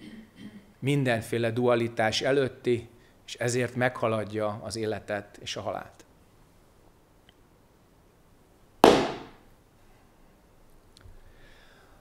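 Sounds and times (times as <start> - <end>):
wooden staff striking sharply: 8.8 - 9.4.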